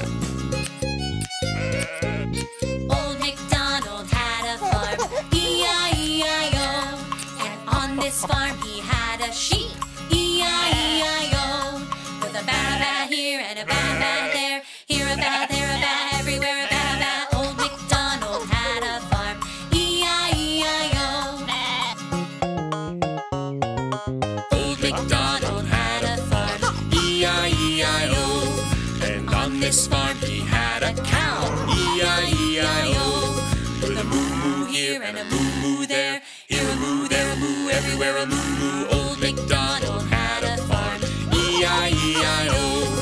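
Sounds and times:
bouncy children's music: 0.0 - 43.0
sheep bleating: 1.5 - 2.4, 12.5 - 13.0, 13.6 - 18.8, 21.4 - 22.1, 26.4 - 27.1, 31.1 - 32.4, 33.8 - 35.4, 41.3 - 43.0.

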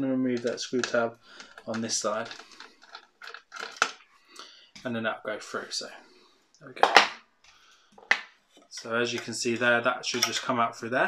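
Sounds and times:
plastic parts clicking: 0.4 - 4.0.

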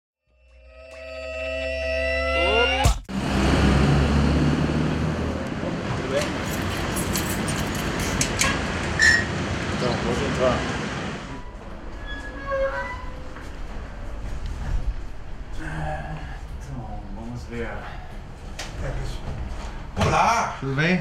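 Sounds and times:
street traffic noise: 3.1 - 20.0.

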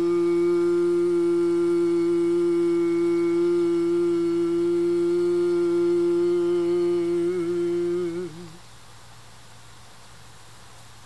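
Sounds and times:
man singing long note: 0.0 - 8.6.

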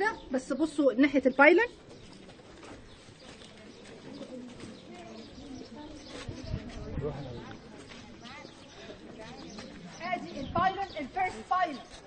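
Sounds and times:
faint chatter of people: 0.0 - 12.0.

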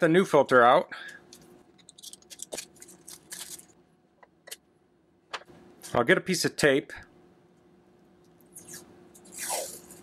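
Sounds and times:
plastic packaging crinkling: 1.3 - 3.8.

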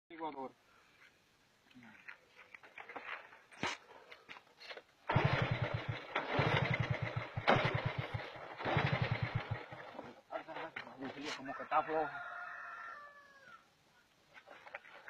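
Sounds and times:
motorcycle engine throbbing: 5.1 - 9.8.

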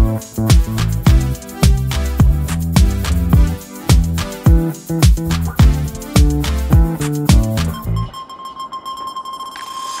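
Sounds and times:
background music: 0.0 - 8.2
high steady beep tone: 7.7 - 10.0.

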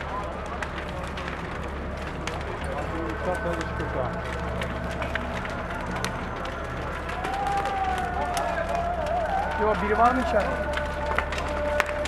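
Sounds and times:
fire crackling and popping: 0.0 - 12.0.

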